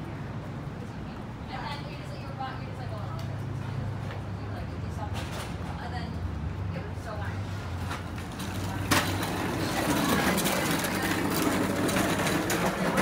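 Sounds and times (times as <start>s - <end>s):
passers-by talking: 0.0s - 13.0s
traffic engine hum: 0.0s - 13.0s.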